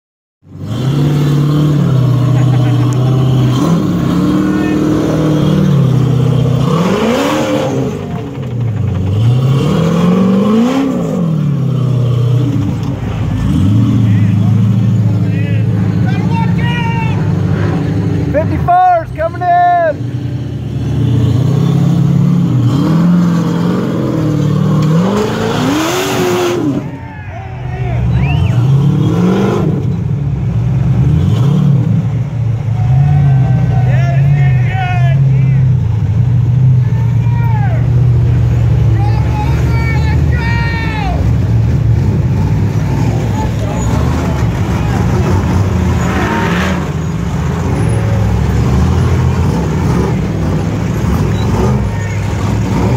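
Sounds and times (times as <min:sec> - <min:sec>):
buggy engine revving hard: 0:00.5 - 0:16.5, 0:17.1 - 0:27.0, 0:28.0 - 0:37.0, 0:37.6 - 0:52.9.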